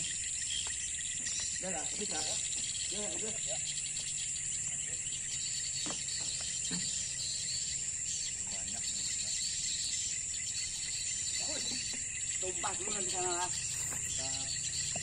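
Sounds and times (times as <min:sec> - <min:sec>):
insects chirping in grass: 0:00.0 - 0:15.0.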